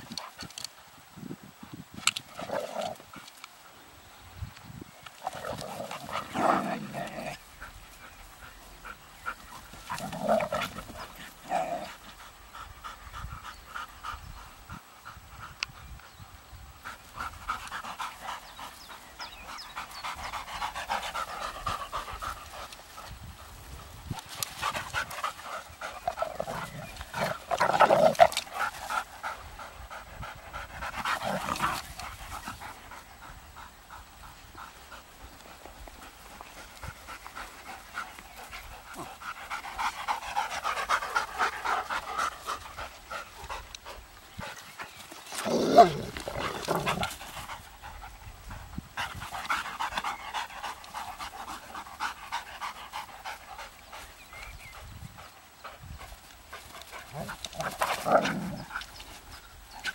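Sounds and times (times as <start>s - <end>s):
dogs playing roughly: 5.0s - 15.6s, 16.8s - 59.9s
dogs panting: 5.1s - 59.9s.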